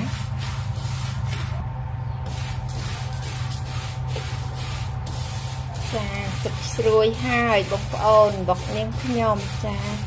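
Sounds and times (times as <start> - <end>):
spatula scraping metal wok: 0.0 - 1.6, 2.2 - 10.0
steady low hum: 0.0 - 10.0.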